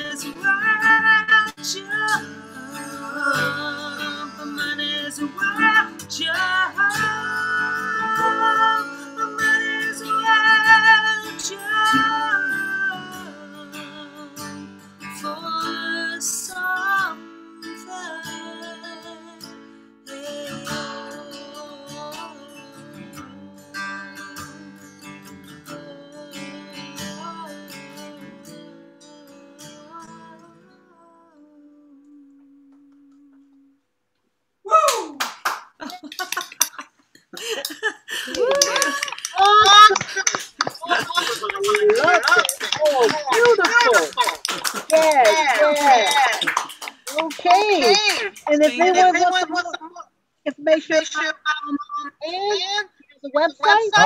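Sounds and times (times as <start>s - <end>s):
woman singing: 0.0s - 19.5s, 20.1s - 24.6s, 25.7s - 28.8s, 29.5s - 33.7s, 38.3s - 44.3s, 47.2s - 49.5s, 53.4s - 54.0s
acoustic guitar: 0.0s - 34.3s, 34.9s - 54.0s.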